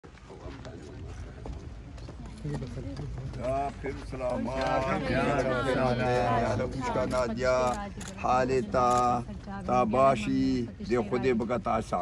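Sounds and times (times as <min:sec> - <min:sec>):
footsteps on dirt: 0:00.0 - 0:05.2.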